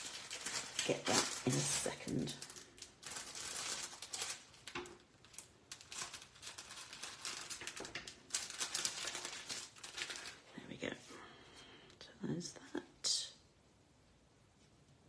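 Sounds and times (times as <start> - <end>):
crinkling and rustling of packaging: 0.0 - 11.0.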